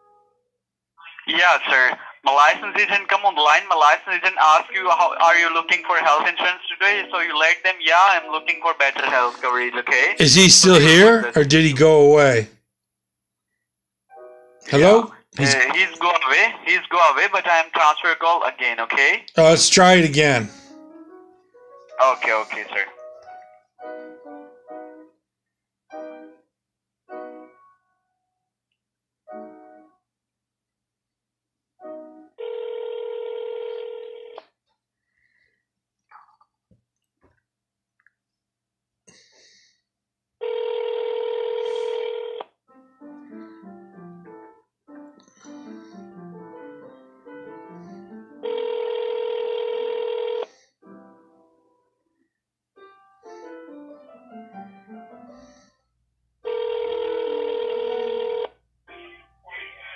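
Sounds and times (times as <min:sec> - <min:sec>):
hold music with piano notes: 0:19.5 - 0:25.2, 0:42.7 - 0:48.8, 0:52.8 - 0:55.7
telephone ringback tone: 0:32.4 - 0:34.4, 0:40.4 - 0:42.4, 0:48.4 - 0:50.5, 0:56.4 - 0:58.6.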